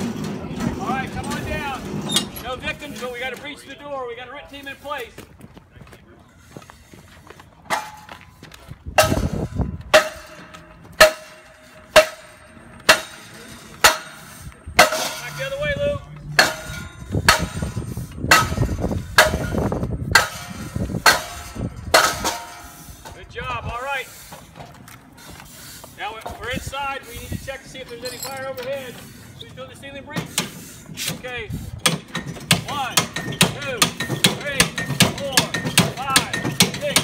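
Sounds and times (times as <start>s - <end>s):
heavy boot footsteps on pavement: 4.8s - 11.9s
hammer striking metal: 7.7s - 8.2s, 9.0s - 22.9s, 31.8s - 37.0s.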